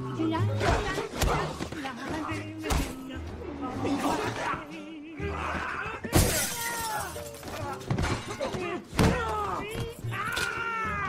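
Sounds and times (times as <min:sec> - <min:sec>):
background music: 0:00.0 - 0:11.0
loud crash of breaking glass: 0:06.1 - 0:07.3.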